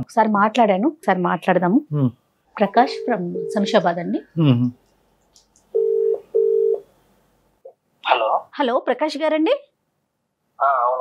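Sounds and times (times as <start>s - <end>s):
telephone ringback tone: 2.9s - 3.8s, 5.8s - 6.8s.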